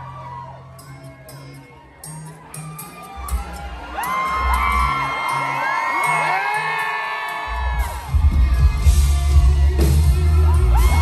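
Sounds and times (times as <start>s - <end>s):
crowd cheering and whooping: 0.0s - 11.0s
live band playing: 0.3s - 11.0s
heavy bass and drums: 7.6s - 11.0s.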